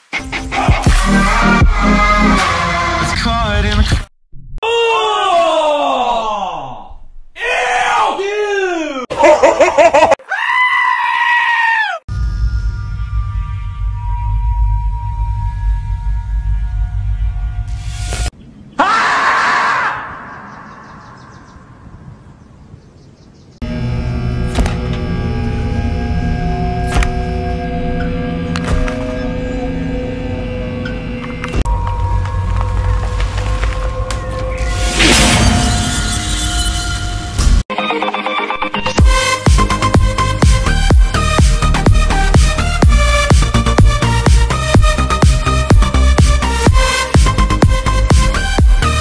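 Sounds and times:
loud shouting: 0:04.6 - 0:06.8, 0:18.8 - 0:20.4
goat screaming: 0:10.3 - 0:12.0
low steady drone: 0:23.6 - 0:33.6
crackles and clicks: 0:30.8 - 0:35.1.

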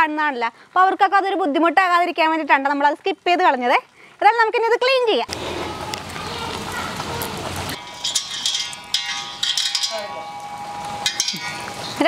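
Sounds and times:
scrapes and clatters on metal pot: 0:07.8 - 0:10.0.

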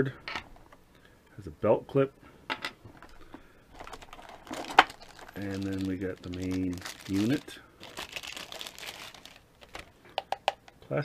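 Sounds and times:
plastic bag crinkling: 0:03.7 - 0:09.9.

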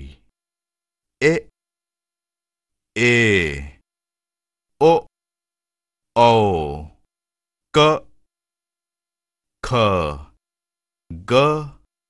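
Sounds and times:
person speaking a vowel: 0:01.2 - 0:01.5, 0:03.0 - 0:03.8, 0:04.8 - 0:05.1, 0:06.2 - 0:07.0, 0:07.8 - 0:08.1, 0:09.6 - 0:10.4, 0:11.1 - 0:11.9.

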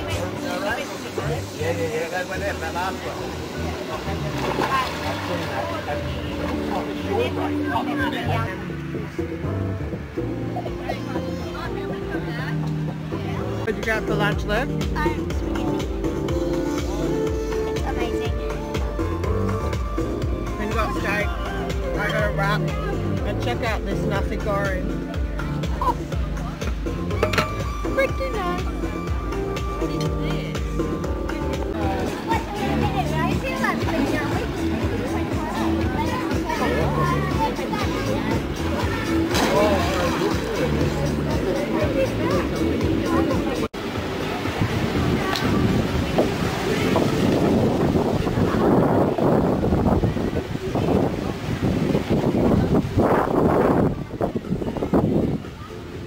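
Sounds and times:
background music: 0:00.0 - 0:48.7
voices talking: 0:00.0 - 0:56.0
ocean surf breaking: 0:43.4 - 0:53.8
wind buffeting microphone: 0:44.0 - 0:56.0.

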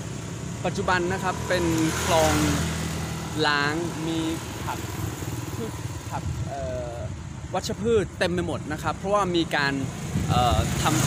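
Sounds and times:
motor engine rumbling: 0:00.0 - 0:11.0.

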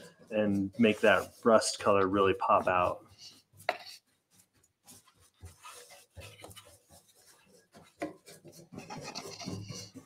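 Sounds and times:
brush scraping on metal: 0:00.0 - 0:10.0.

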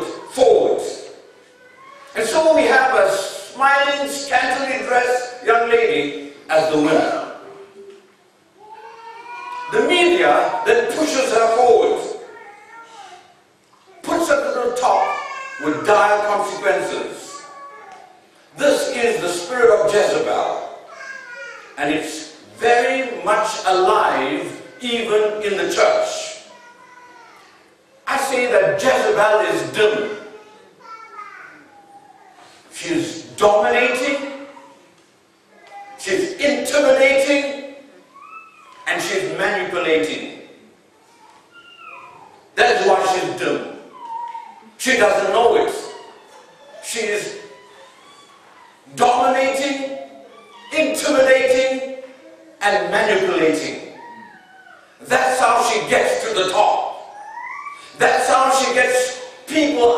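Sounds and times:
man speaking: 0:00.0 - 0:01.2, 0:02.2 - 0:07.6, 0:09.7 - 0:12.3, 0:14.0 - 0:17.4, 0:18.6 - 0:20.9, 0:21.8 - 0:26.5, 0:28.1 - 0:30.4, 0:32.7 - 0:34.5, 0:36.0 - 0:37.8, 0:38.8 - 0:40.5, 0:42.6 - 0:43.9, 0:44.8 - 0:46.1, 0:46.8 - 0:47.6, 0:48.9 - 0:54.0, 0:55.0 - 0:57.1, 0:57.9 - 0:59.9
man preaching: 0:00.0 - 0:01.3, 0:02.0 - 0:07.5, 0:09.5 - 0:12.3, 0:14.0 - 0:17.5, 0:18.5 - 0:20.9, 0:21.8 - 0:26.5, 0:28.0 - 0:30.4, 0:32.6 - 0:34.6, 0:36.0 - 0:37.9, 0:38.8 - 0:40.6, 0:42.6 - 0:44.2, 0:44.8 - 0:46.2, 0:46.8 - 0:47.8, 0:48.8 - 0:54.1, 0:55.0 - 0:57.2, 0:57.8 - 0:59.9.

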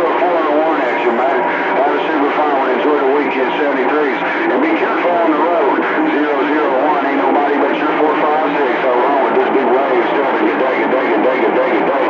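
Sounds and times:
voices over radio speaker: 0:00.0 - 0:12.0.

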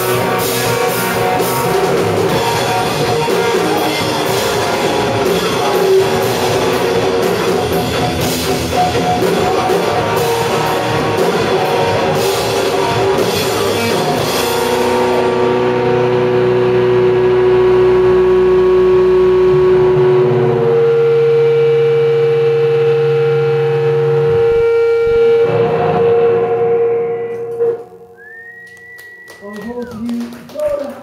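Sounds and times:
electric guitars with feedback: 0:00.0 - 0:30.0
high whistling tone: 0:28.1 - 0:30.1.

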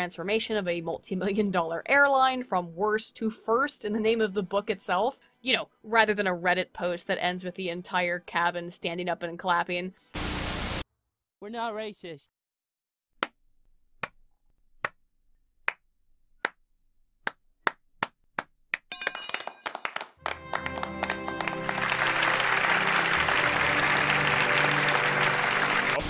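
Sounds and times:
music: 0:02.2 - 0:10.3, 0:20.2 - 0:26.0
hand claps: 0:17.2 - 0:26.0
crowd applause: 0:19.6 - 0:26.0.

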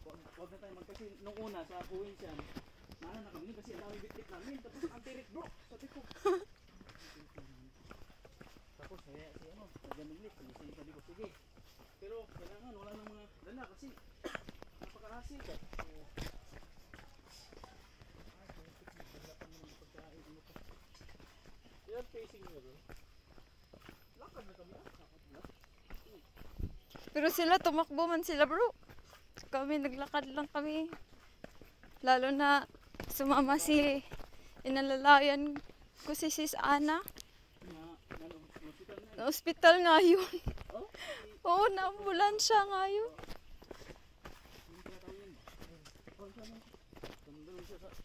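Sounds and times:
footsteps on dirt trail: 0:00.0 - 0:48.0.

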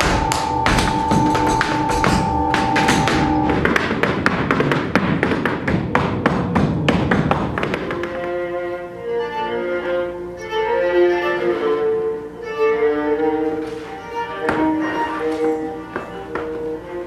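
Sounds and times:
steady held note: 0:00.0 - 0:04.6
boots tap dancing on stage: 0:00.0 - 0:08.6, 0:14.4 - 0:17.0.

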